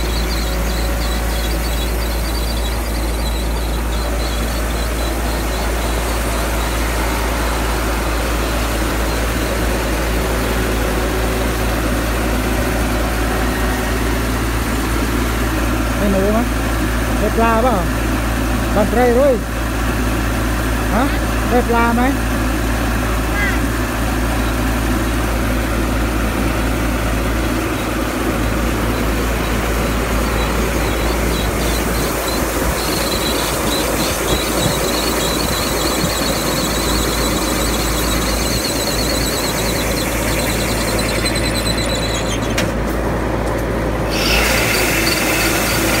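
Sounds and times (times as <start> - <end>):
high pulsing squeal: 0.0 - 16.5, 23.3 - 42.8, 44.0 - 46.0
combine harvester engine running: 0.0 - 46.0
grain pouring into truck bed: 44.1 - 46.0.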